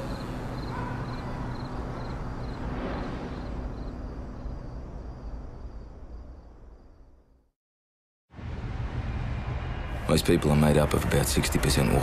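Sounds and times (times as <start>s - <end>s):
crickets chirping: 0.0s - 7.4s.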